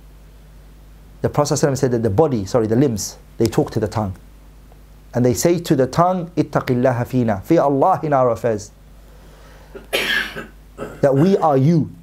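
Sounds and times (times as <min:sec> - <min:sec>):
man talking: 0:01.2 - 0:04.2, 0:05.2 - 0:08.8, 0:10.8 - 0:12.0
man coughing: 0:09.7 - 0:11.5.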